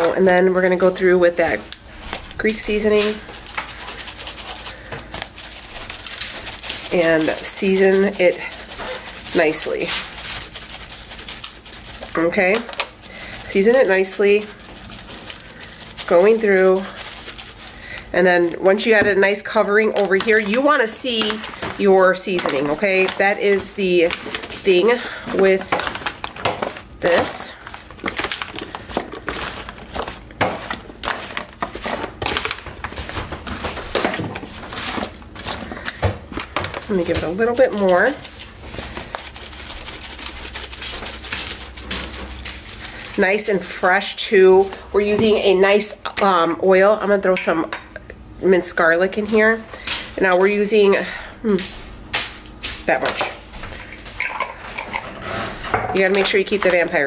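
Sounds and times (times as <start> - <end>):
seasoning pattering onto potatoes: 2.3 - 33.5, 34.5 - 45.0
spice shaker rattling: 2.4 - 18.6, 36.4 - 44.8.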